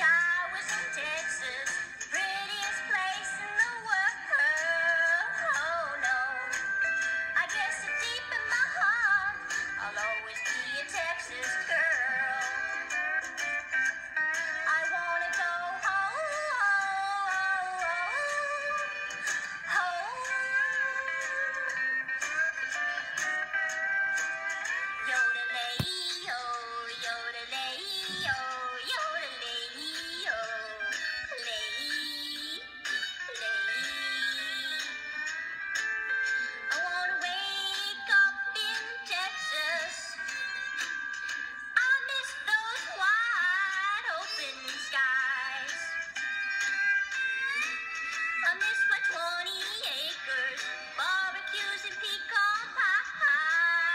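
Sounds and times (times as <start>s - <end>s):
woman singing in high-pitched voice: 0.0s - 6.6s, 19.7s - 21.3s, 25.0s - 32.6s, 33.3s - 34.8s, 36.7s - 40.7s, 41.8s - 45.9s, 48.4s - 53.9s.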